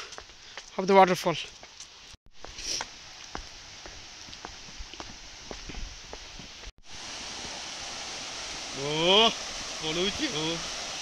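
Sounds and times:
footsteps on concrete steps: 0.0s - 6.7s.

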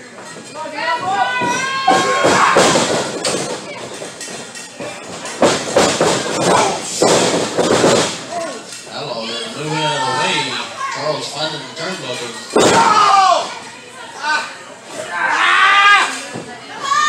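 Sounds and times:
crowd shouting: 1.0s - 3.2s, 12.6s - 13.6s.

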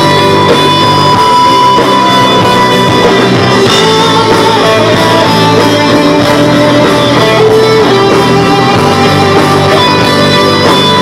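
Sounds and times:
held guitar melody: 0.0s - 11.0s
rock band playing: 0.0s - 11.0s.

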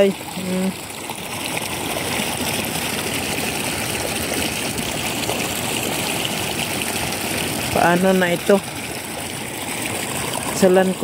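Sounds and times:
floodwater rushing: 0.0s - 11.0s.

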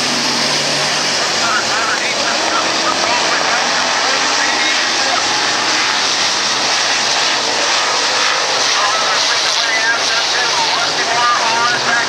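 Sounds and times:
race car engines running hard: 0.0s - 12.0s.

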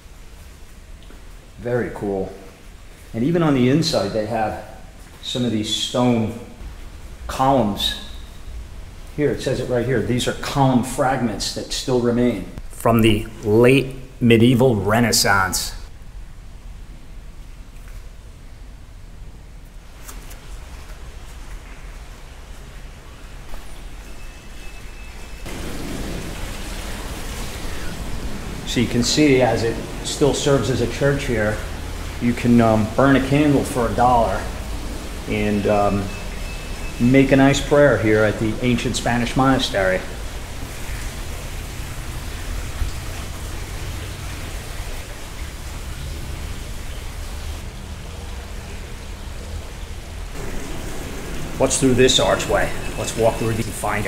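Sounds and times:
rushing noise with low rumble: 25.4s - 54.0s.

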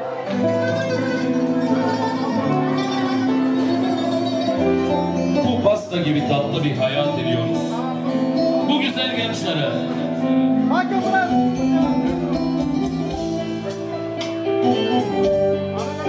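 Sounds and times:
band music: 0.0s - 16.0s.

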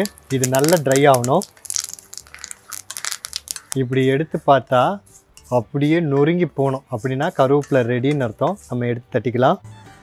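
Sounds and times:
leaves crackling in hot oil: 0.0s - 3.8s
person speaking: 0.0s - 4.1s.

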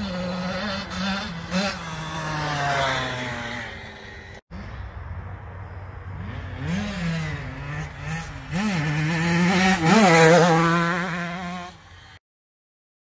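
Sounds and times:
dirt bike engine revving: 0.0s - 4.7s, 6.0s - 12.2s.

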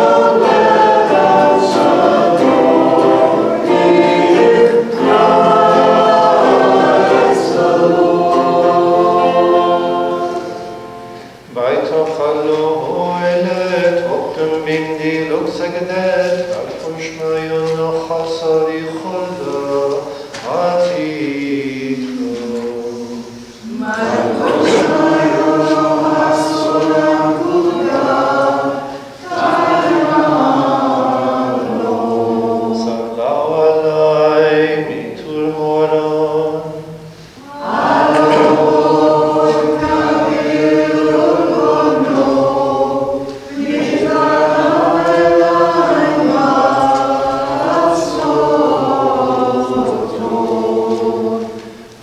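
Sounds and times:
choir chanting a hymn: 0.0s - 52.0s.

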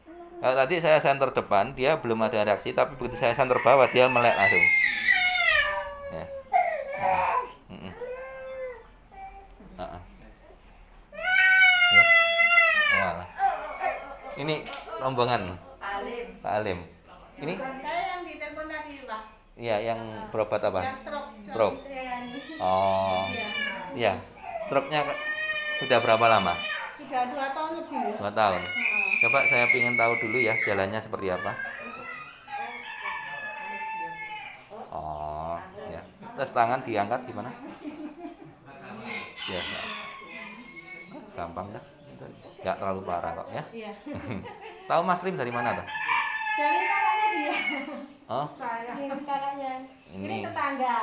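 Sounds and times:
infant crying: 3.1s - 9.5s, 11.1s - 14.4s, 22.1s - 27.0s, 28.0s - 32.7s.

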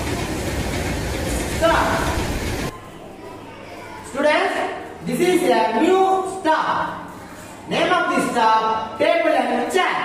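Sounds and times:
running train: 0.0s - 2.7s.

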